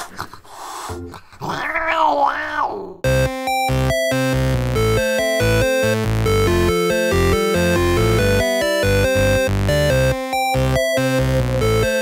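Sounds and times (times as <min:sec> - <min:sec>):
cat yowling and growling: 0:01.4 - 0:03.0.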